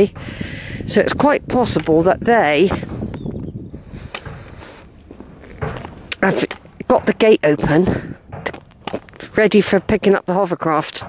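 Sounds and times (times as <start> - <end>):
footsteps on gritty concrete: 0.0 - 11.0.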